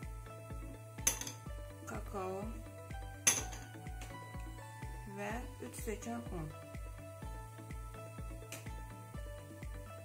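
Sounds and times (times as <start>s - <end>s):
background music with steady beat: 0.0s - 10.0s
spoon clinking glass bowl: 1.0s - 1.5s, 3.2s - 3.8s.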